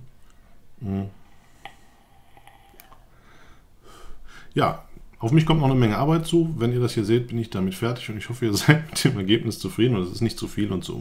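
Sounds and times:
airy breathing: 0.4s - 4.6s.

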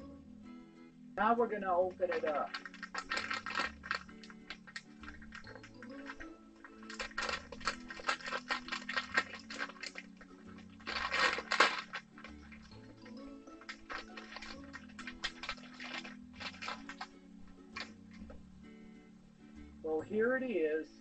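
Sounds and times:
quiet background music: 0.0s - 21.0s
plastic bag crinkling: 2.0s - 18.4s
plastic tearing rustle: 2.1s - 18.2s.

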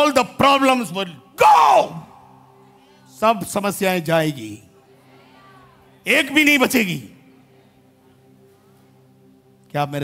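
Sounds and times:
man shouting: 1.3s - 2.2s.

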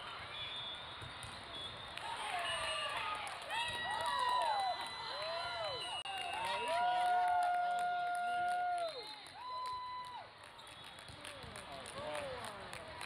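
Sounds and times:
referee's whistle: 0.2s - 3.0s, 4.6s - 6.8s
crowd shouting and cheering: 2.0s - 10.3s.

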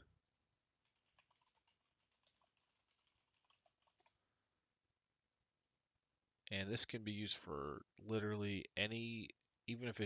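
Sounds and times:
keyboard typing: 0.8s - 4.2s.

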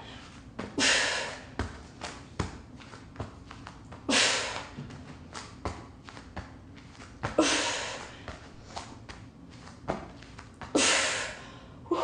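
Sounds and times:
woman breathing out hard: 0.8s - 1.5s, 7.4s - 8.4s, 10.8s - 12.0s.

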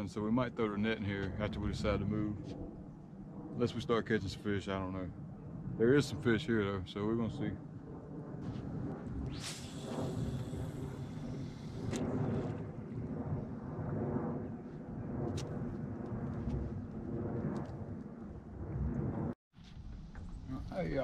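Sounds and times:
steady low rumble: 0.0s - 21.0s.

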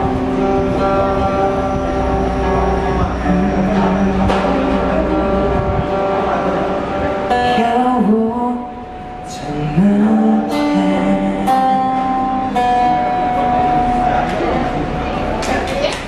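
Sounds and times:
acoustic guitar strummed: 0.0s - 15.4s
person singing: 2.6s - 6.0s, 7.3s - 12.8s.

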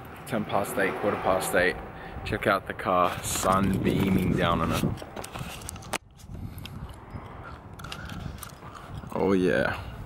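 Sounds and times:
camera handling noise: 3.3s - 9.1s.

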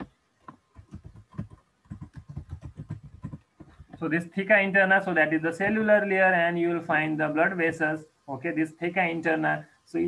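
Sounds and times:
keyboard typing: 0.0s - 4.1s.

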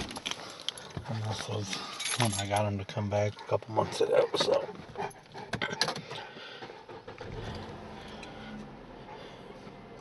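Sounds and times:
vehicle engine starting and running: 5.4s - 10.0s.

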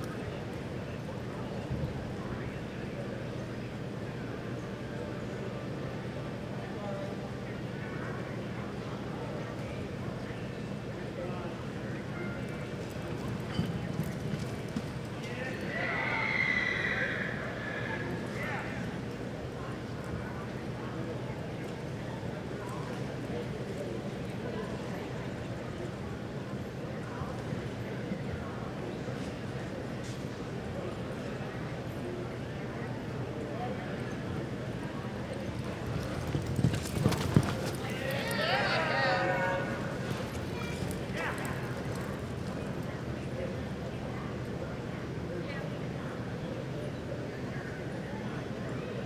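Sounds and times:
horse hooves loping on dirt: 35.3s - 38.4s, 39.6s - 42.8s
horse hoofbeats on dirt: 35.4s - 38.4s.

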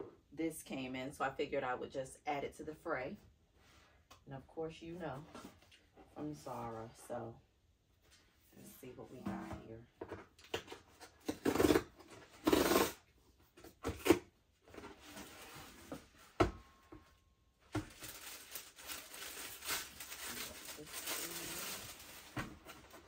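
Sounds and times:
tissue paper rustling: 17.8s - 23.0s.

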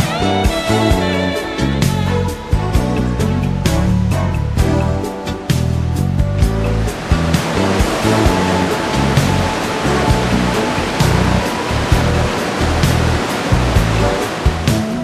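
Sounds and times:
background music with steady beat: 0.0s - 15.0s
mountain torrent rushing: 6.6s - 15.0s.

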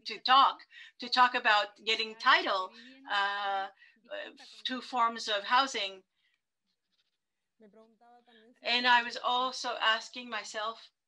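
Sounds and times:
woman speaking: 0.0s - 6.0s, 8.6s - 10.8s.

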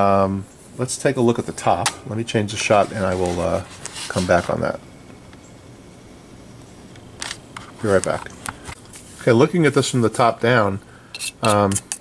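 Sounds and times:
faint steady hiss: 0.0s - 12.0s
camera handling rustle: 7.2s - 9.1s.

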